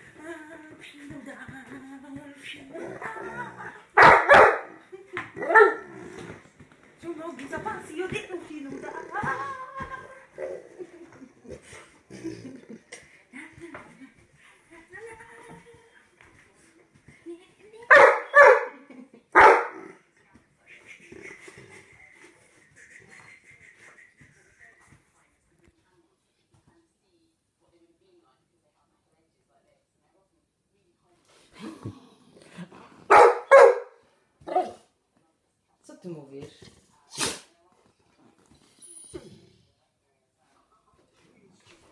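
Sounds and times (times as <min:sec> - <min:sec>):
dog barking: 0:04.0 - 0:04.8, 0:05.4 - 0:05.9, 0:17.9 - 0:18.8, 0:19.4 - 0:20.0, 0:33.1 - 0:34.8.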